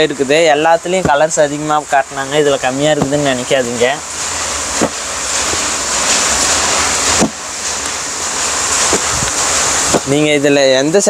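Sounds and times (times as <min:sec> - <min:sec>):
loud steady rushing noise: 0:00.0 - 0:11.0.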